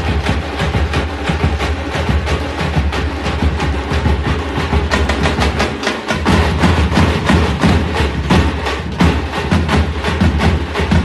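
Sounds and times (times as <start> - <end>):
bass drum: 0.0 - 11.0
frame drums struck with sticks: 0.0 - 11.0.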